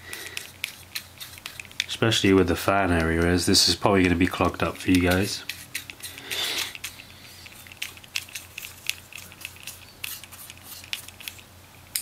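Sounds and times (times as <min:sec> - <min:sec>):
brush scrubbing fan: 0:00.0 - 0:11.4
brush scratches and clicks: 0:00.2 - 0:11.4.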